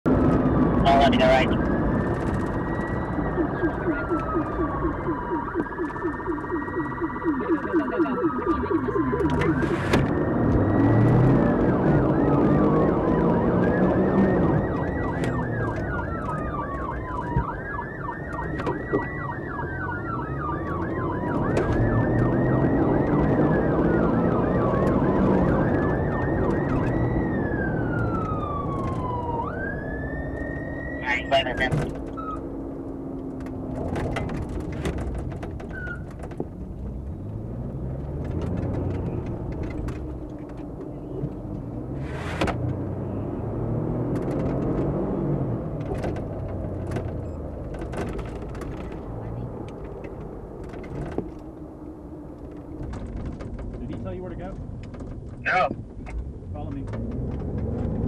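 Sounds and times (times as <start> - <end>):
car engine and road noise: 0.0 - 58.0
police sirens wailing: 0.1 - 54.7, 55.4 - 58.0.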